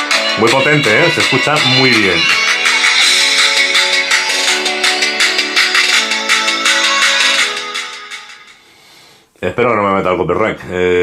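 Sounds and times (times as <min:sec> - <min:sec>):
music from phone loudspeakers: 0:00.0 - 0:08.9.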